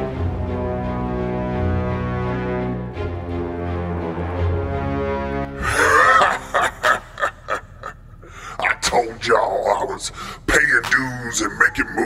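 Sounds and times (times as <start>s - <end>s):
man laughing: 5.6s - 8.8s.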